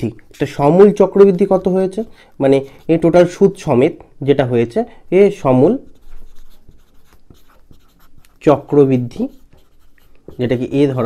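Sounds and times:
marker scratching on whiteboard: 0.0 - 3.7, 5.5 - 11.0.

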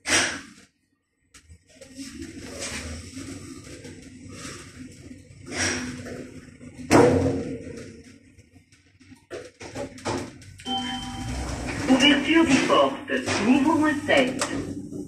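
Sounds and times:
short electronic tone: 10.7 - 11.9
glass doors sliding: 11.0 - 12.8.

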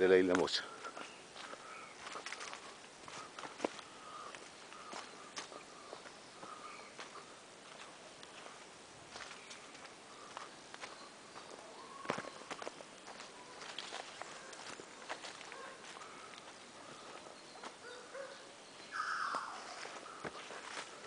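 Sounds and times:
footsteps in forest: 0.0 - 21.0.

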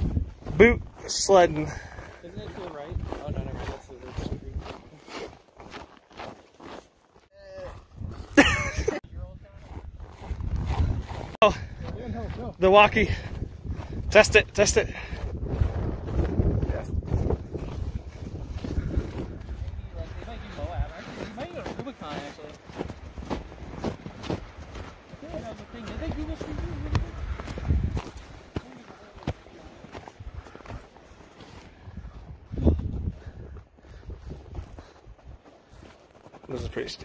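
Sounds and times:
footsteps crunching on snow: 0.0 - 37.0.

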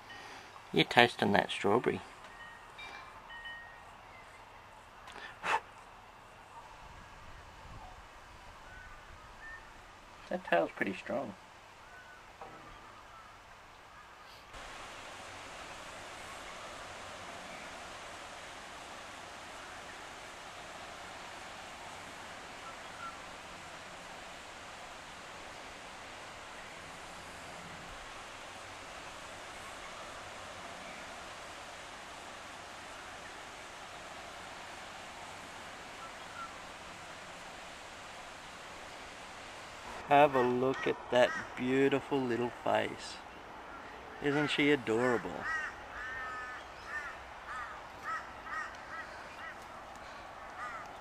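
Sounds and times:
outdoor background hiss: 0.0 - 51.0.

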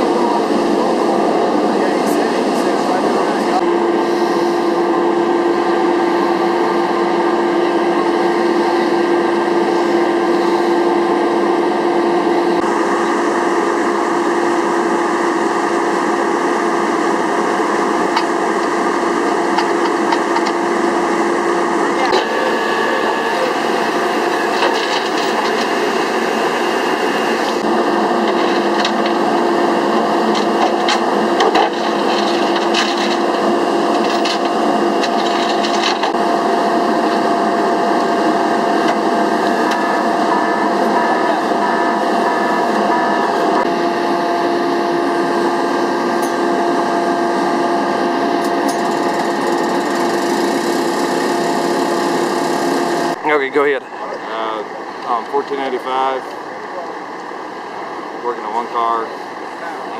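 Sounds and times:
engine droning hum: 0.0 - 59.9.

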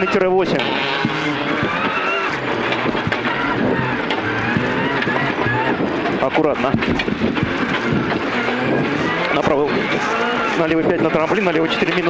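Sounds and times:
rally car engine running hard: 0.0 - 12.0
tyre noise: 0.0 - 12.0
wind noise: 0.0 - 12.0.

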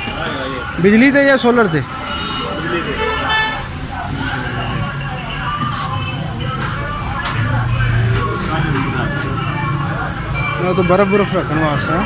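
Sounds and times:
street traffic rumble: 0.0 - 12.0
vehicle horn toot: 2.0 - 3.7.

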